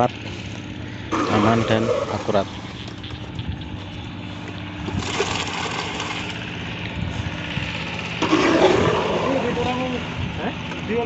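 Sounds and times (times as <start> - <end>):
small engine running: 0.0 - 11.0
voices calling out: 0.0 - 11.0
wet concrete scraping: 1.1 - 3.4, 4.8 - 6.6, 8.2 - 9.8.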